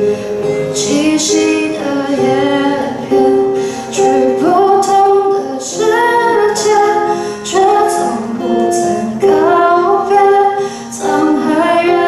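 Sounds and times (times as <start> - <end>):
acoustic guitar: 0.0 - 12.0
woman singing: 0.4 - 12.0.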